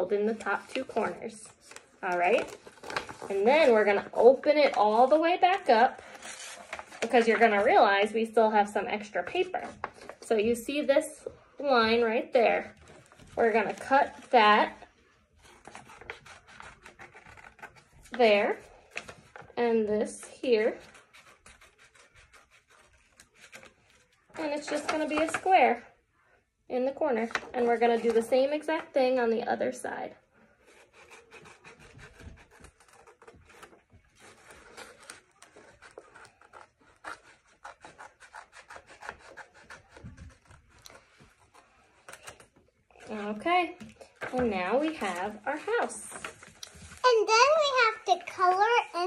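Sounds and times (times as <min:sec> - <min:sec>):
paper rustling and crinkling: 0:00.0 - 0:10.5, 0:12.5 - 0:25.8, 0:30.6 - 0:49.0
scissors cutting paper: 0:15.4 - 0:18.2, 0:20.6 - 0:25.5, 0:30.7 - 0:46.8
scissors snipping paper: 0:30.7 - 0:42.5.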